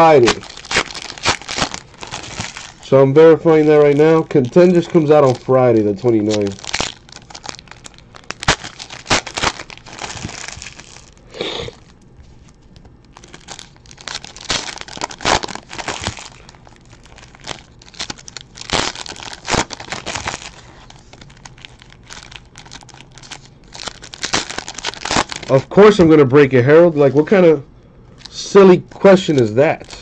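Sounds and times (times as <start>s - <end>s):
card pack wrappers tearing and crinkling: 0.0s - 26.0s, 28.2s - 30.0s.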